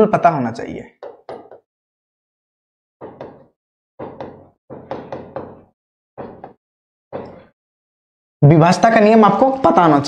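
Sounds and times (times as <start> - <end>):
chalk tapping on blackboard: 1.0 - 1.7, 3.0 - 6.6.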